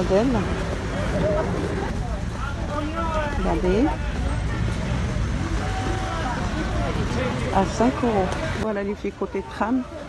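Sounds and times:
low rumble of traffic or wind: 0:00.0 - 0:10.0
people's voices: 0:00.0 - 0:10.0.

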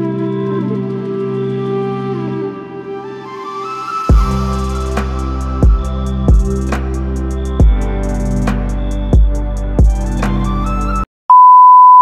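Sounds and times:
music with a beat: 0:04.1 - 0:11.1
steady test-tone beep: 0:11.3 - 0:12.0.

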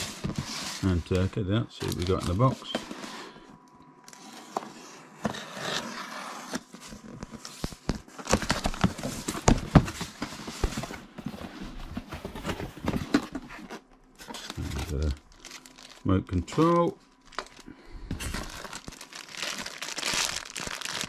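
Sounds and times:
cardboard and paper rustling: 0:00.0 - 0:03.4, 0:04.1 - 0:21.0.

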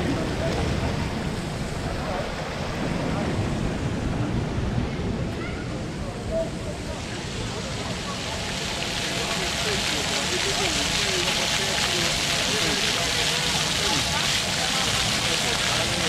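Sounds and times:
fountain water spraying: 0:00.0 - 0:03.8, 0:05.8 - 0:16.0
faint voices of people: 0:00.0 - 0:16.0.

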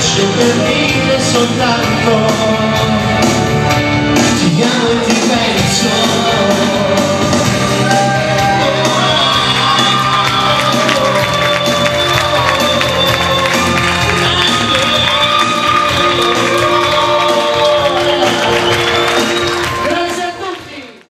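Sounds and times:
pop song over loudspeakers: 0:00.0 - 0:21.0
audience clapping along: 0:08.1 - 0:21.0.

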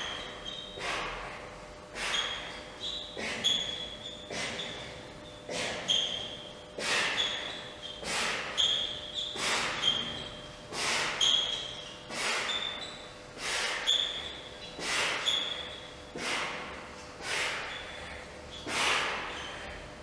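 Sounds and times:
short high squeaks: 0:00.0 - 0:01.0, 0:02.0 - 0:15.9, 0:17.3 - 0:19.8
man breathing heavily under strain: 0:00.2 - 0:08.6, 0:09.3 - 0:10.1, 0:10.7 - 0:11.2, 0:12.0 - 0:20.0.

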